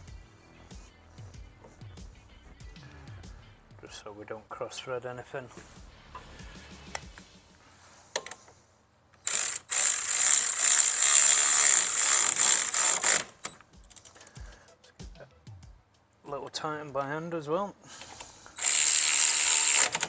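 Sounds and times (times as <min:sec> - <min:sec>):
hand ratchet clicking: 0:09.2 - 0:14.6, 0:18.0 - 0:20.0.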